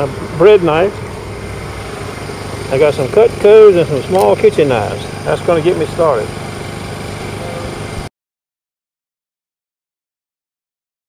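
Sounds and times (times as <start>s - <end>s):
motor humming: 0.0s - 8.1s.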